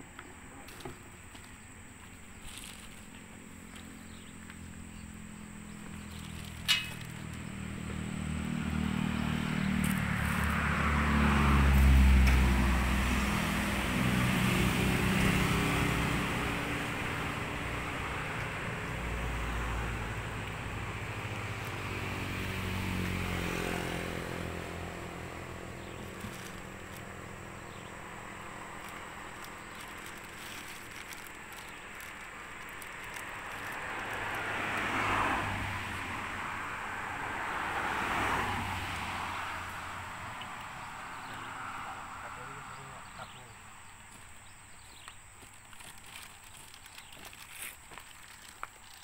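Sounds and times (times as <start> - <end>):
vehicle engine passing by: 2.5 - 44.1.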